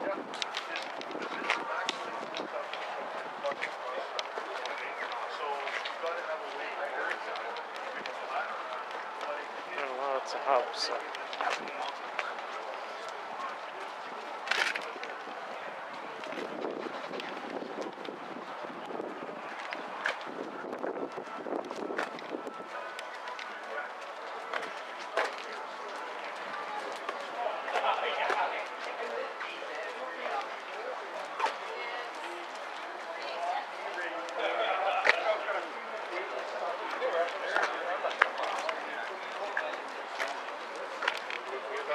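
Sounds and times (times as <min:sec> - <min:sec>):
people chattering: 0:00.0 - 0:41.9.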